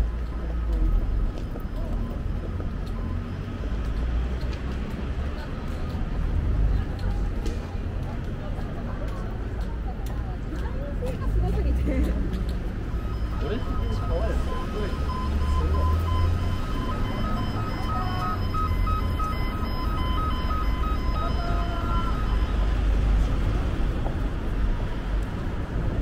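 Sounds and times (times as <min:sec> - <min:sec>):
passers-by talking: 0:00.0 - 0:26.0
traffic rumble: 0:00.0 - 0:26.0
two-tone electronic beep: 0:13.0 - 0:23.6.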